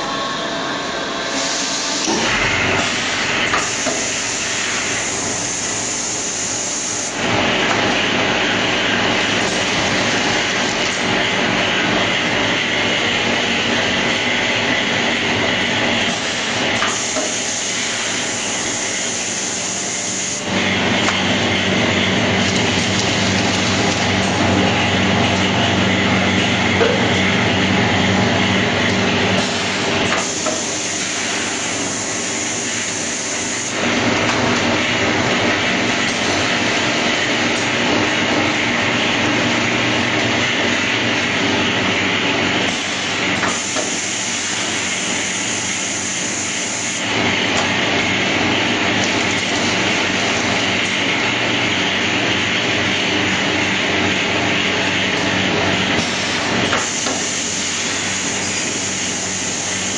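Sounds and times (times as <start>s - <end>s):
packaging machinery running: 0.0s - 59.9s.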